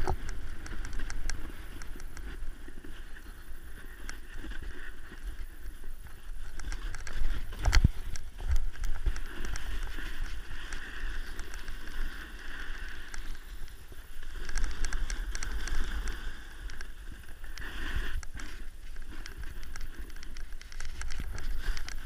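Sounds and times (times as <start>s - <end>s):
snowboard sliding over snow: 0.0s - 22.0s
wind rumbling on microphone: 0.0s - 22.0s.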